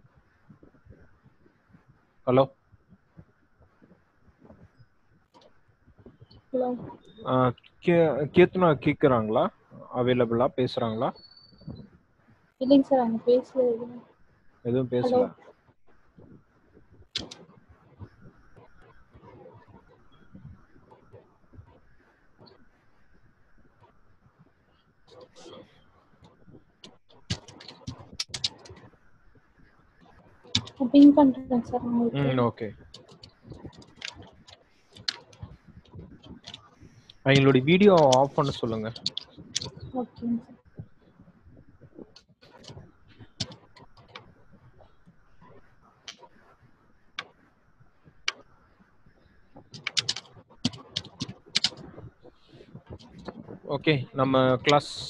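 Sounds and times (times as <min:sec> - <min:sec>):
computer keyboard typing: 0:17.2 - 0:17.4, 0:27.3 - 0:28.8, 0:30.6 - 0:31.6, 0:33.0 - 0:35.4, 0:36.3 - 0:40.3, 0:43.4 - 0:44.2, 0:49.7 - 0:51.9
sharp clicks and knocks: 0:26.8 - 0:28.8, 0:32.8 - 0:39.9, 0:42.2 - 0:44.3, 0:49.6 - 0:52.0.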